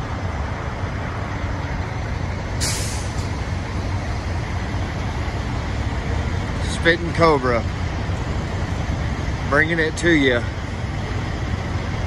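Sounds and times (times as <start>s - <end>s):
trucks idling rumble: 0.0s - 12.0s
air brake hiss: 2.6s - 3.3s.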